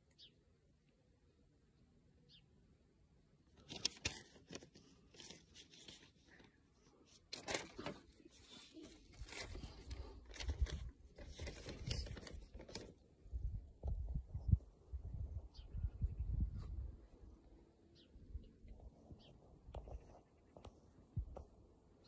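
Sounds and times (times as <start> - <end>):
phone handling rustling and scraping: 7.1 - 12.9.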